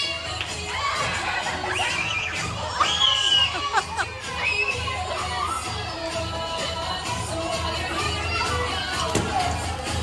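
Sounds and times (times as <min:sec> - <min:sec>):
party music with low beat: 0:00.0 - 0:10.0
children shouting and shrieking: 0:00.6 - 0:06.1, 0:07.8 - 0:09.7.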